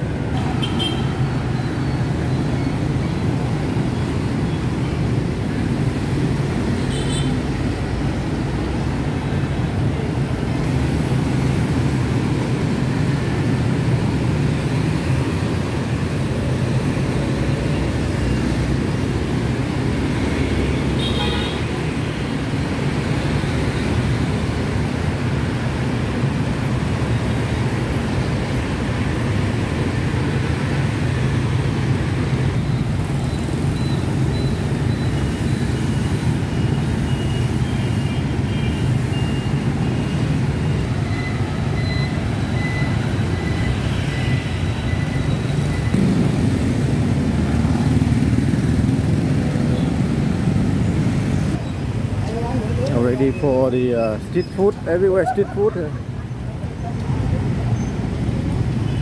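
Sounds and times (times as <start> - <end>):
street traffic roar: 0.0 - 59.0.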